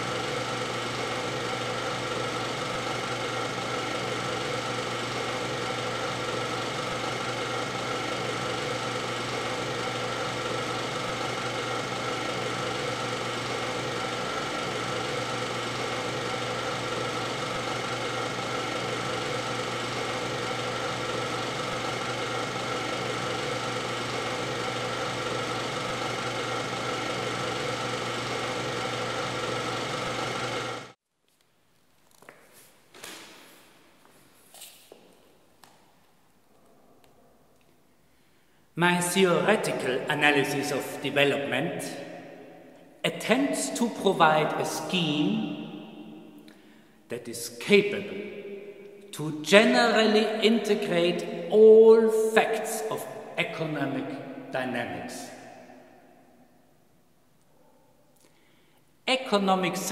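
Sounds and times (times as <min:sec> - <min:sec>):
film projector whirring: 0:00.0 - 0:31.0.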